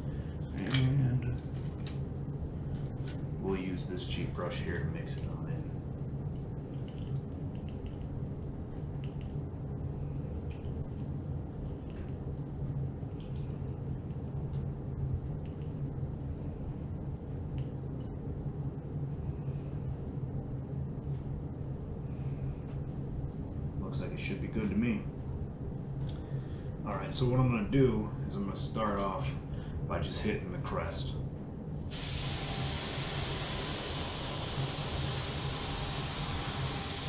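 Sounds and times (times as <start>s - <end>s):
air compressor humming: 31.8s - 37.0s.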